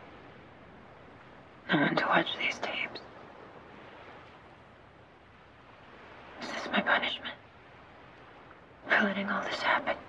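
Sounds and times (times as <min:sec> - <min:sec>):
faint hiss: 0:00.0 - 0:10.0.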